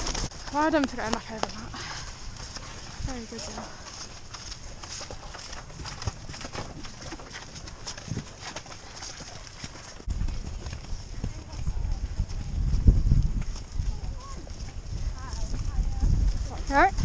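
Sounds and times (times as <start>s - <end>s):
horse hoofbeats on grass: 0.0s - 17.0s
wind buffeting microphone: 10.0s - 17.0s.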